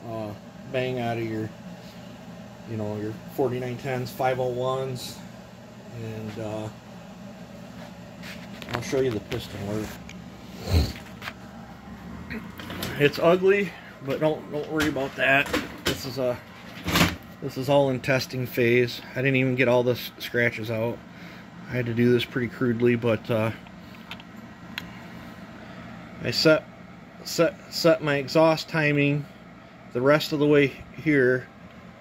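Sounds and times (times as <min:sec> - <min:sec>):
faint steady hum: 0:00.0 - 0:32.0.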